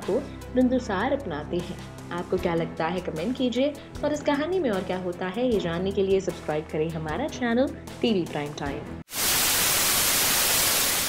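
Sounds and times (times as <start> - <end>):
static hiss: 9.1 - 11.0.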